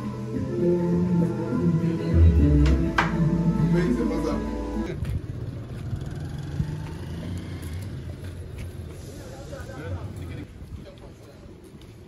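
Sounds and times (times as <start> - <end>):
faint hubbub: 0.0 - 12.0
low street rumble: 0.0 - 12.0.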